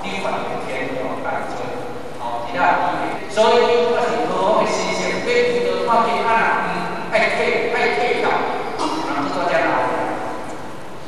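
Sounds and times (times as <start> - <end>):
person lecturing: 0.0 - 10.6.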